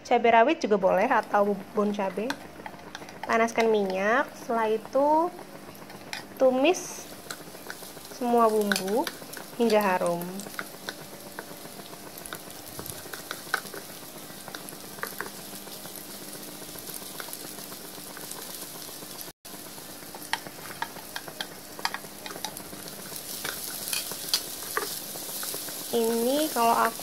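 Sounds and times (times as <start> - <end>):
shallots and garlic sizzling in oil: 0.6 - 27.0.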